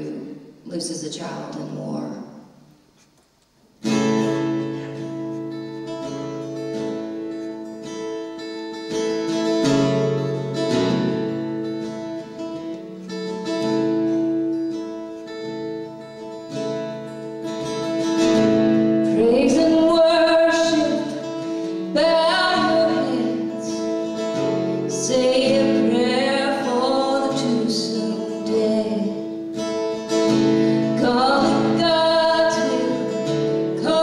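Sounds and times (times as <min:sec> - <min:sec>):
acoustic guitar chords: 0:03.7 - 0:34.0.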